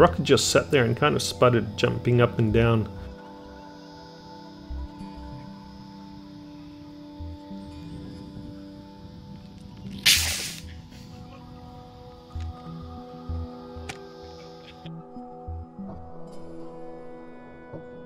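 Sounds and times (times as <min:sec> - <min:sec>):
background music: 0:00.0 - 0:18.0
compressed air hiss: 0:09.9 - 0:11.2.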